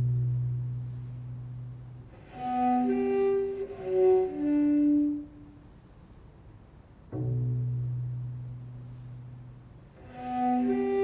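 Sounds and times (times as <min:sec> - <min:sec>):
low cello note: 0:00.0 - 0:05.6, 0:07.1 - 0:11.0.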